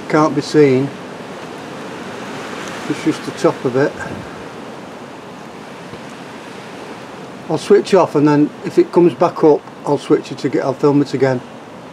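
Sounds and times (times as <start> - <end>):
steady rushing hiss: 0.0 - 11.9.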